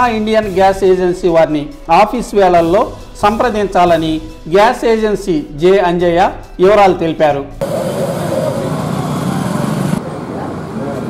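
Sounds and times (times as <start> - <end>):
small engine running: 7.6 - 11.0.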